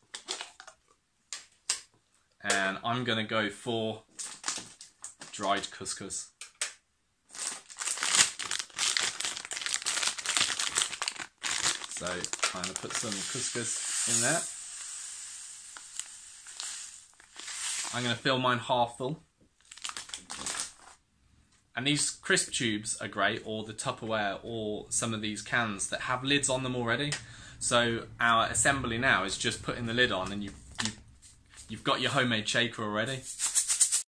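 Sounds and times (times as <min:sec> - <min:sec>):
packet rustle: 0:00.1 - 0:00.8, 0:04.1 - 0:05.4, 0:07.3 - 0:18.2, 0:19.6 - 0:21.0
couscous grains trickling: 0:09.4 - 0:18.2.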